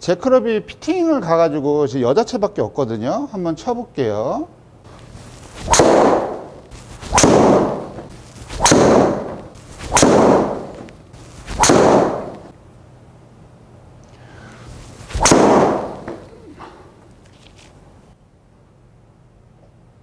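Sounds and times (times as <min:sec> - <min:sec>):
golf driver striking ball: 0:05.6 - 0:12.5, 0:15.2 - 0:16.3.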